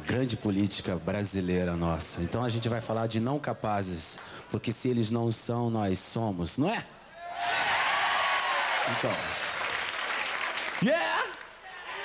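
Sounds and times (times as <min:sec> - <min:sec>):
audience applauding and cheering: 0:07.2 - 0:12.0.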